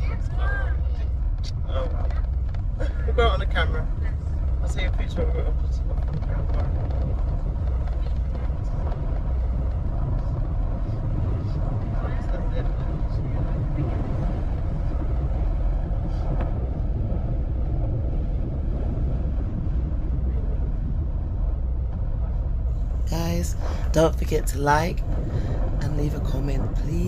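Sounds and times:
car engine and tyre rumble: 0.0s - 26.9s.

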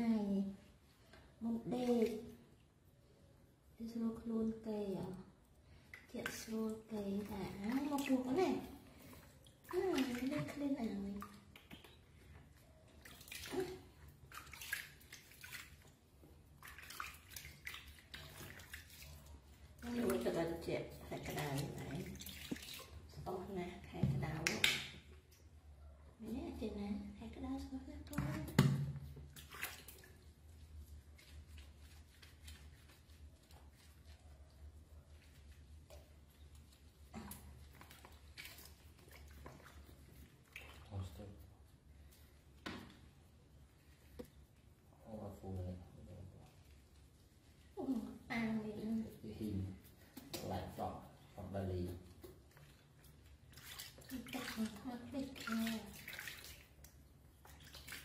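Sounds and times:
woman speaking: 0.0s - 0.6s, 1.4s - 2.4s, 3.8s - 5.3s, 6.1s - 8.8s, 9.7s - 11.4s, 19.8s - 22.2s, 23.2s - 24.7s, 26.2s - 28.6s, 47.8s - 49.6s, 54.1s - 56.0s
water splashing in plastic basin: 5.2s - 25.6s, 28.0s - 33.4s, 34.0s - 41.5s, 42.4s - 43.3s, 47.7s - 58.0s.

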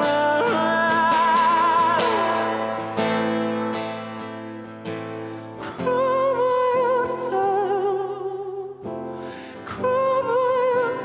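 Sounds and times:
man singing: 0.0s - 4.3s, 5.6s - 8.8s, 9.6s - 11.0s
strummed acoustic guitar: 0.0s - 11.0s.

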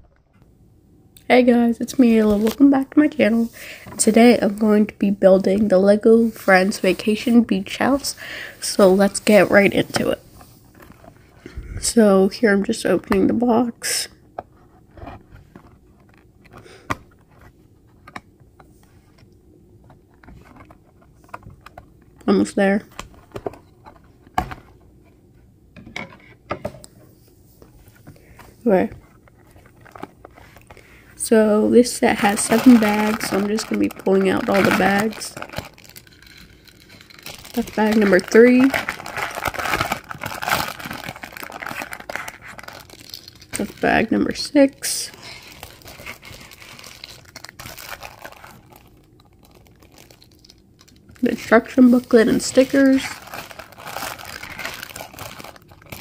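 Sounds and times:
plastic bags crinkling: 28.6s - 31.0s, 31.7s - 56.0s.

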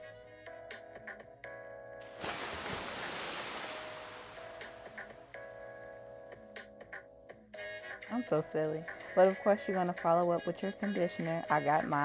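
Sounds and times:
background music: 0.0s - 12.0s
shower water splashing: 2.1s - 5.0s.

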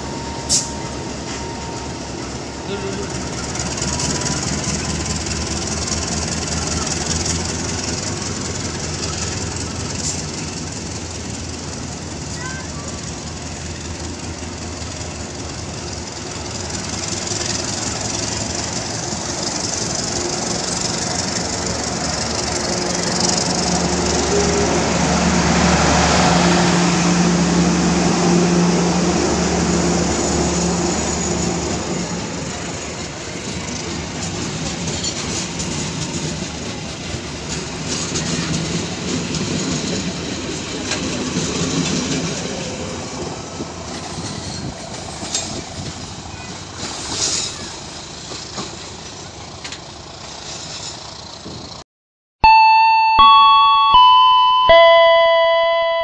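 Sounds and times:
train coaches rolling past: 0.0s - 51.8s.

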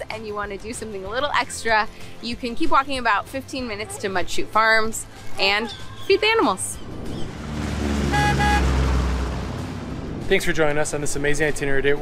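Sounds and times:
low bass swell: 6.7s - 11.2s
bright horn-like notes: 7.8s - 9.0s.

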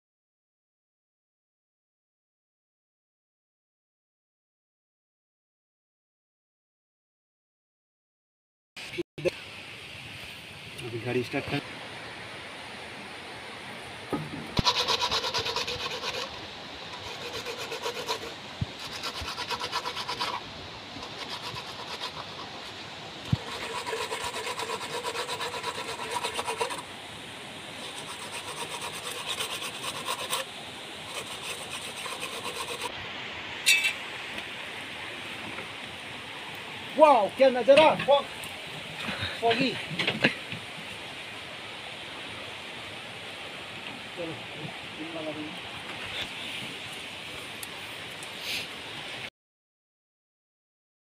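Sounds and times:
steady background hiss: 8.9s - 49.3s.

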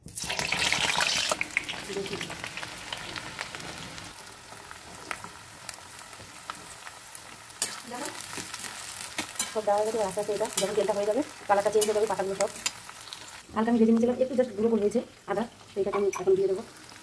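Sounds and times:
oil sizzling in a wok: 0.0s - 17.0s.

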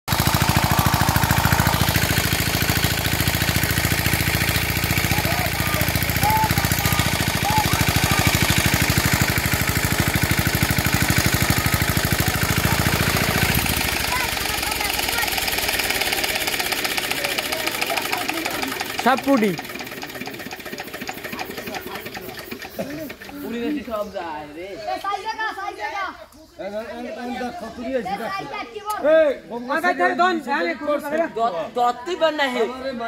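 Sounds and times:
water pump engine chugging: 0.1s - 24.2s.

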